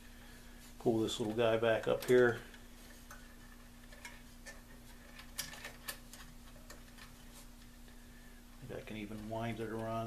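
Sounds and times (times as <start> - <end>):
steady low hum: 0.0 - 10.0
small clicks of handled wires: 1.2 - 8.0.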